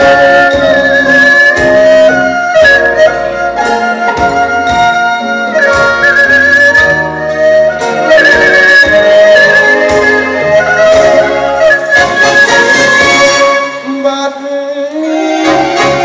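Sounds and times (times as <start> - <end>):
slow instrumental backing track: 0.0 - 16.0.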